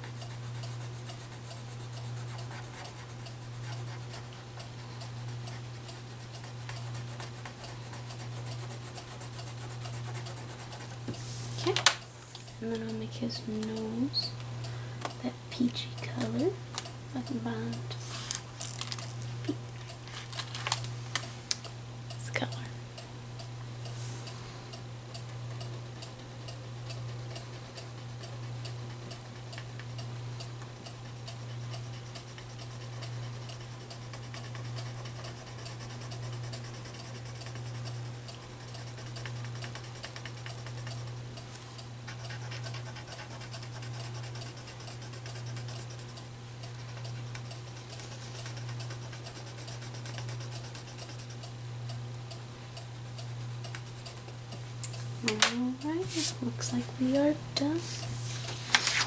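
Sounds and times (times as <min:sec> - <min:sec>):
steady low hum: 0:00.0 - 0:59.0
colored pencil scratching on paper: 0:00.1 - 0:11.4, 0:31.0 - 0:41.1, 0:42.1 - 0:46.2, 0:46.8 - 0:51.4.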